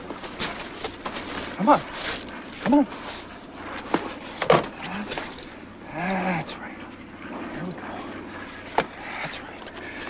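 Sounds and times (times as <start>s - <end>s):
steady background drone: 0.0s - 10.0s.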